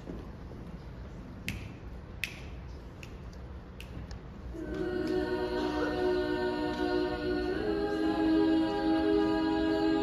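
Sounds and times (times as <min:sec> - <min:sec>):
low room noise: 0:00.0 - 0:10.0
finger snapping: 0:01.4 - 0:04.2.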